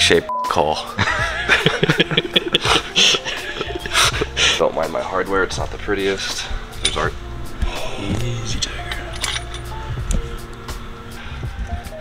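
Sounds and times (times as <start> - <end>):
background music: 0.0 - 12.0
breathy laughter and snorts: 1.0 - 4.6.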